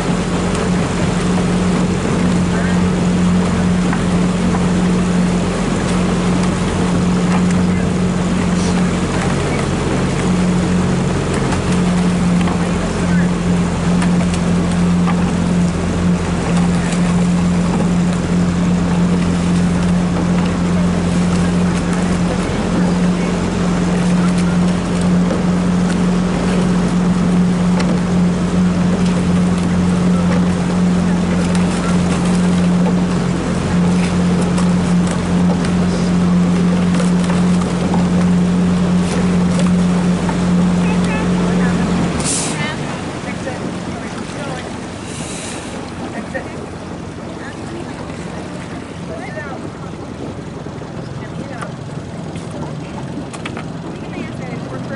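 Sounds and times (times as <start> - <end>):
outboard motor humming: 0.0 - 54.9
water noise: 0.0 - 54.9
wind: 0.0 - 54.9.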